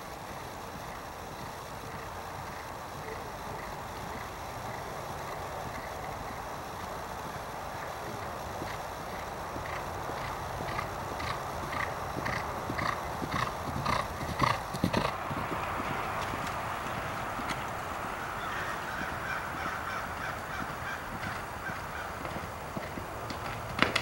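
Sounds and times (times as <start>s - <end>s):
horse galloping on turf: 0.0s - 24.0s
steady outdoor hiss: 0.0s - 24.0s.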